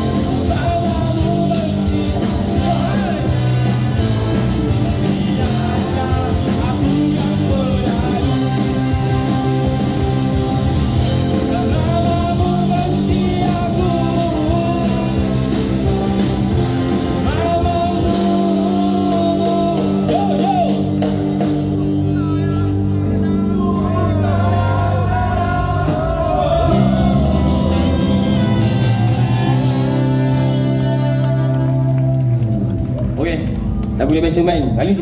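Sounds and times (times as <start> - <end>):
person singing: 0.0 - 10.5, 11.2 - 15.9, 16.9 - 20.9, 22.2 - 32.2
horn section: 0.0 - 32.9
bass guitar: 0.0 - 35.0
drums: 0.0 - 35.0
electric guitars: 0.0 - 35.0.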